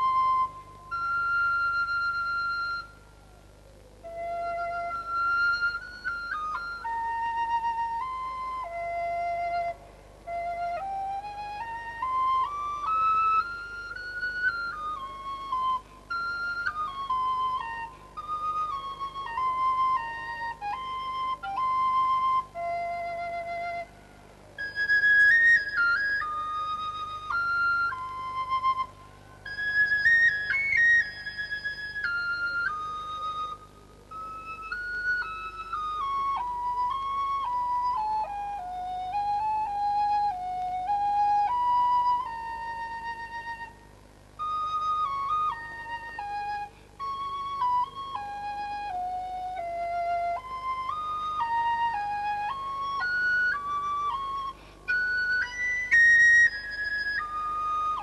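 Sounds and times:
solo flute playing slow melody: 0.0s - 58.0s.

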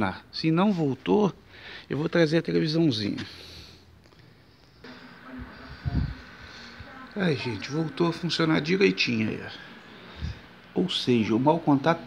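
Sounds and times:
television dialogue: 0.0s - 12.0s
thin steady high tone: 4.4s - 12.0s.

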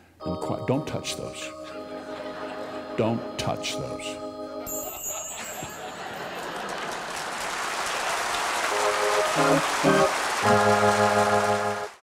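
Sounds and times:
band playing: 0.2s - 4.9s, 8.7s - 12.0s
audience applauding: 6.0s - 12.0s.

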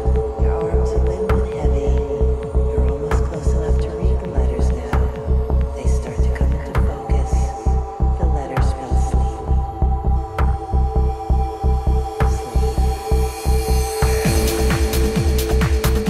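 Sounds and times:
pulsing kick and bass: 0.0s - 16.0s
synth drone: 0.0s - 16.0s.

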